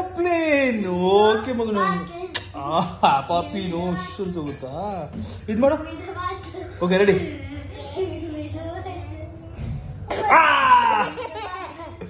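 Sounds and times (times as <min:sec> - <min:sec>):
toddler belly laugh: 0:10.9 - 0:12.0.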